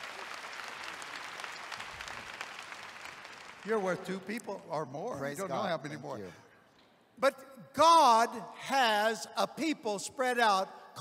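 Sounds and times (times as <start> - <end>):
large audience applauding: 0.0 - 4.4.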